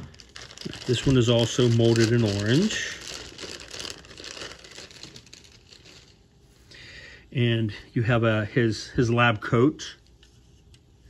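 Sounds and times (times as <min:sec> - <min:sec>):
plastic bag crinkling: 0:00.0 - 0:06.3.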